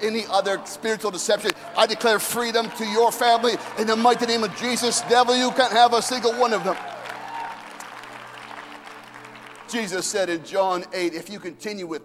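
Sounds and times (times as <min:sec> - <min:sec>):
congregation applauding: 0:00.0 - 0:10.9.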